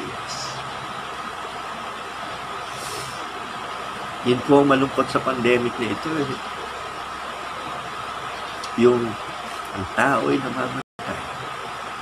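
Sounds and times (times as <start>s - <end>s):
faint engine hum: 0.0s - 12.0s
road traffic noise: 0.0s - 12.0s
brief hiss: 2.7s - 3.2s.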